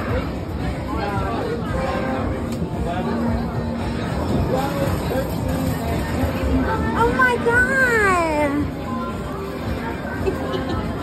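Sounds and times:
indistinct voices and chatter: 0:00.0 - 0:11.0.

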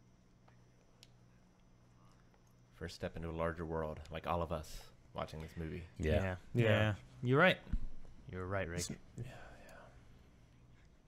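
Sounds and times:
faint whispering voice: 0:09.2 - 0:10.1.

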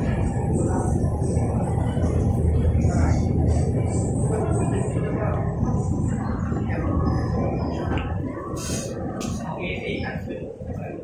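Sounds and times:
people's voices: 0:00.0 - 0:11.0
steady low rumble: 0:00.0 - 0:11.0.

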